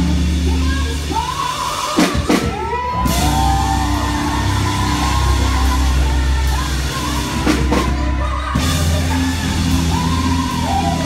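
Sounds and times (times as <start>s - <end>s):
singers holding sliding notes: 0.0s - 11.0s
steady bass: 0.0s - 11.0s.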